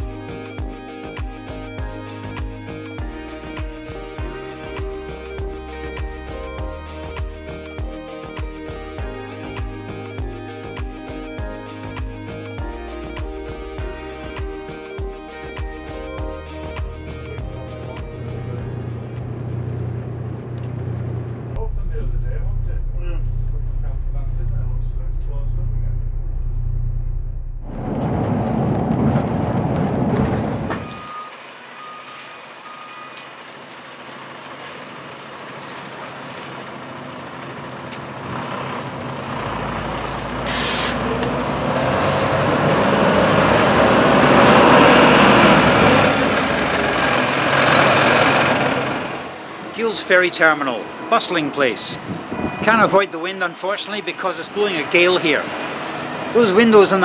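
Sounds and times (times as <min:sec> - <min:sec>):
diesel engine running: 0:16.5 - 0:50.0
wind gusting on microphone: 0:27.3 - 0:31.1, 0:52.0 - 0:53.1
air brakes hissing: 0:35.5 - 0:36.7, 0:39.3 - 0:41.2.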